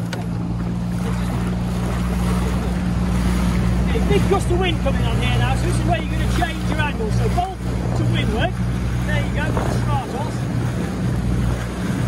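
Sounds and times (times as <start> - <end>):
outboard engine running: 0.0 - 12.0
water rushing along hull: 0.0 - 12.0
wind on microphone: 0.0 - 12.0.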